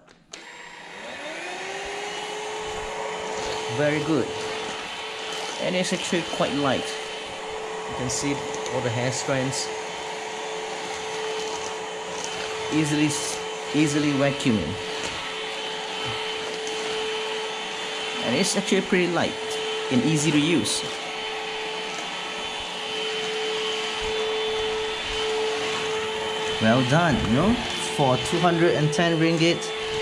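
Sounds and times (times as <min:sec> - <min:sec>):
stick vacuum running: 0:00.0 - 0:30.0.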